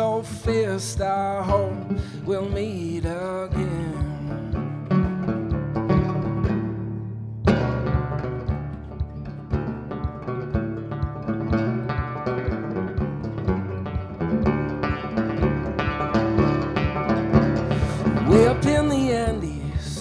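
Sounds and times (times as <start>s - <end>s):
banjo picking: 0.0s - 20.0s.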